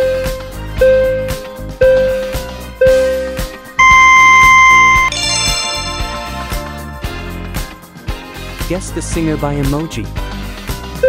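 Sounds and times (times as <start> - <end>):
background music with steady beat: 0.0 - 11.0
long high steady beep: 3.8 - 5.2
short beep: 3.8 - 5.2.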